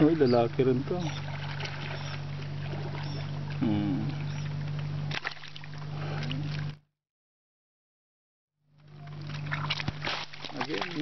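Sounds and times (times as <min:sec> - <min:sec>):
low motor hum: 0:00.0 - 0:06.9, 0:08.6 - 0:11.0.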